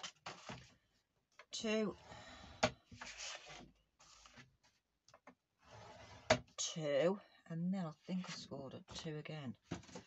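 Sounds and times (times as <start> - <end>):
scoring tool scraping card: 3.0 - 4.4.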